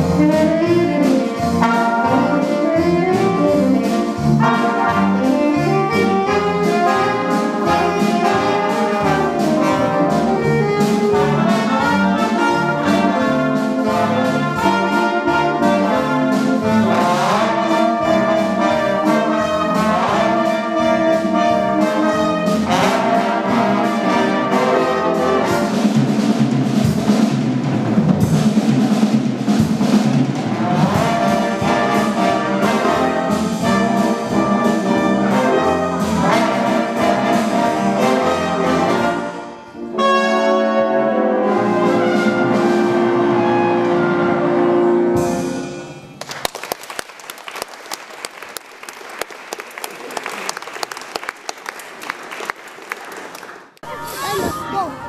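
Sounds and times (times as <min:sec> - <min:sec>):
youth band with saxophones: 0:00.0 - 0:46.4, 0:49.0 - 0:55.0.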